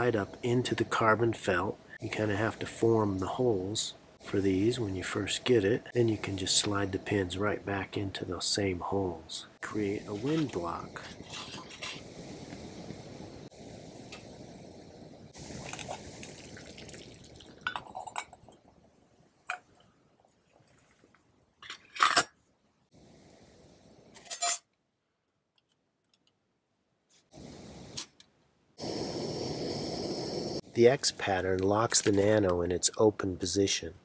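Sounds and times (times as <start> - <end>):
gas burner hissing: 0.0 - 18.3, 22.9 - 24.4, 27.3 - 28.2, 28.8 - 33.0.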